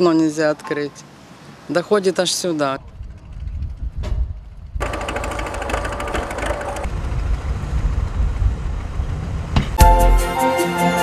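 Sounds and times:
truck engines rumbling: 0.0s - 10.9s
rapid mechanical chatter: 4.8s - 6.9s.

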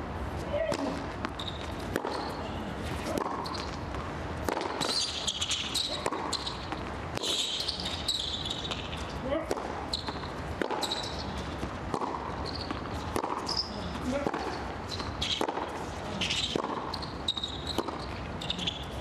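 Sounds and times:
racket hitting tennis ball: 0.6s - 18.8s
tennis ball bouncing: 0.6s - 19.0s
shoes squeaking on court: 0.8s - 4.0s, 4.6s - 9.2s, 9.8s - 19.0s.

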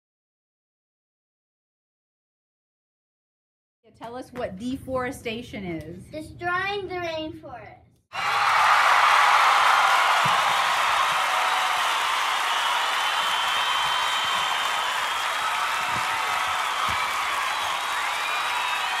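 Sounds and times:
children cheering and shouting: 8.1s - 19.0s.

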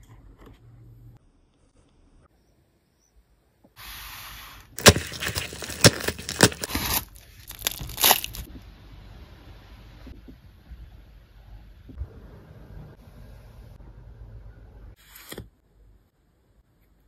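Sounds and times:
plastic mailer tearing: 4.8s - 8.5s.

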